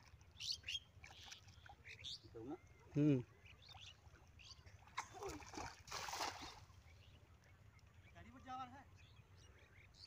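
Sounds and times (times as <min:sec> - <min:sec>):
birds chirping: 0:00.0 - 0:05.5, 0:06.2 - 0:10.0.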